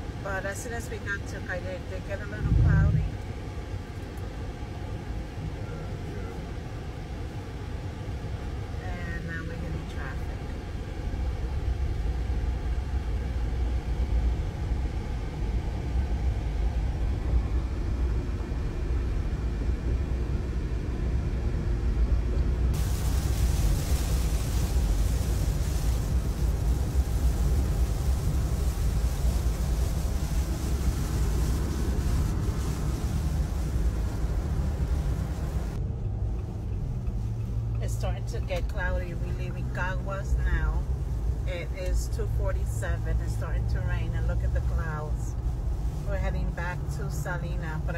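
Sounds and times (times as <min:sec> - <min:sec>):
road rumble inside car: 0:00.0 - 0:47.9
rain hiss on wet road: 0:22.8 - 0:35.8, 0:40.6 - 0:41.5, 0:44.5 - 0:47.2.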